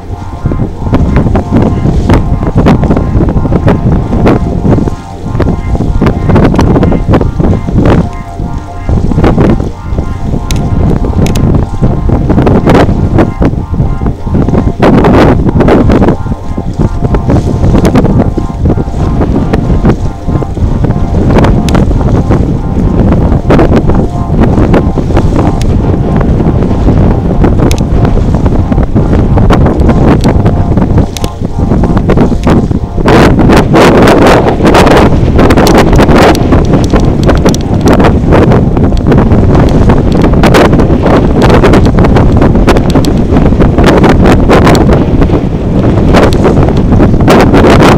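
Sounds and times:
faint steady tones: 0.0s - 47.9s
wind buffeting microphone: 0.0s - 47.9s.

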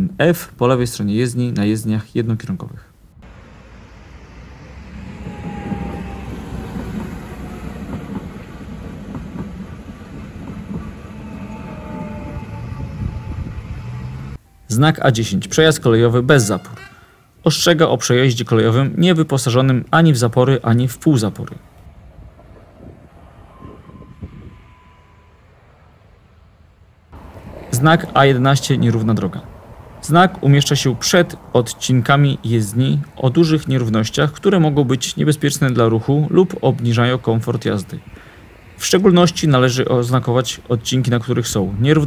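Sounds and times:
passenger train passing: 3.1s - 42.0s.

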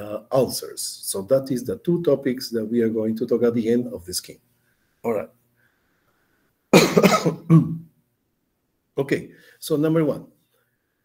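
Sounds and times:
man coughing: 6.7s - 7.9s.

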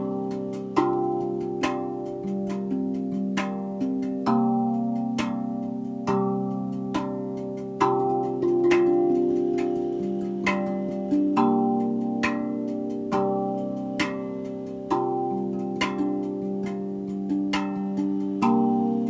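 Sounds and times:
steel hand drum melody: 0.0s - 19.0s.

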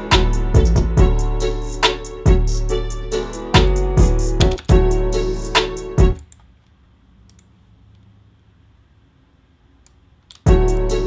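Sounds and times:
hip-hop beat with deep bass: 0.0s - 6.2s, 10.4s - 11.0s.

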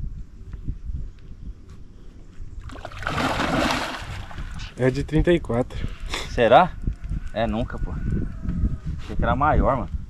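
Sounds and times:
fish splashing in water: 2.7s - 4.6s.

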